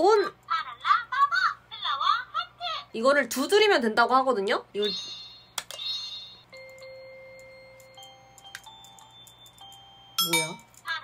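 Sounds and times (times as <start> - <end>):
electronic chime notes: 4.9 - 10.7
toy handling clicks: 5.5 - 5.9.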